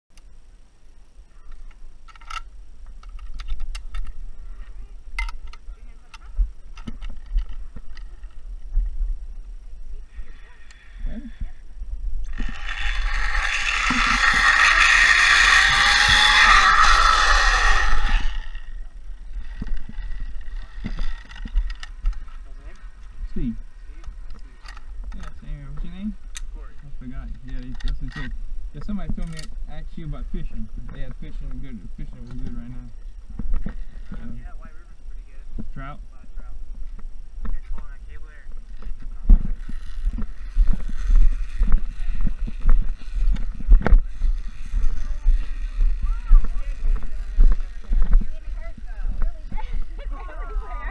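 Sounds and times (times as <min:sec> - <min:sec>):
metal clicks of carabiners: 0:01.5 - 0:04.2, 0:27.3 - 0:28.3, 0:29.2 - 0:29.6
zipline trolley whirring on cable: 0:12.2 - 0:25.3, 0:37.8 - 0:50.9.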